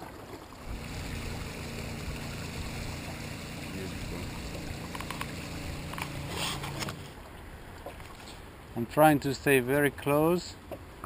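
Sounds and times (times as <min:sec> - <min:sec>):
river water rushing along hull: 0:00.0 - 0:11.0.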